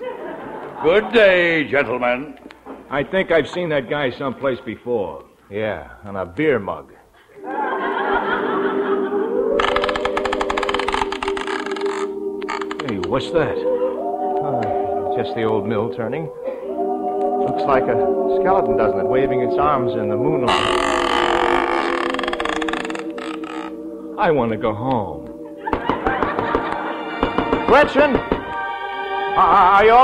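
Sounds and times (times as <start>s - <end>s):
orchestral music low chords: 7.6s - 30.0s.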